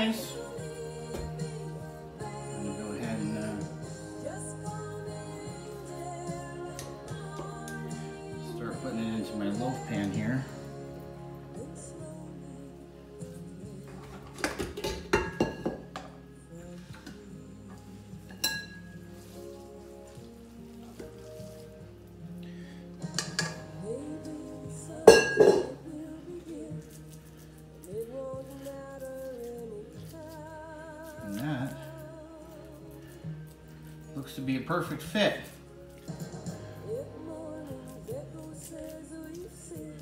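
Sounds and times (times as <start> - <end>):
background music: 0.0 - 40.0.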